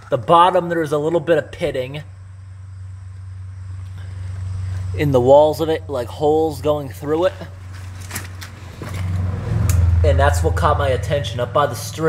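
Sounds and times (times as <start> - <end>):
vehicle rumbling on road: 0.0 - 12.0.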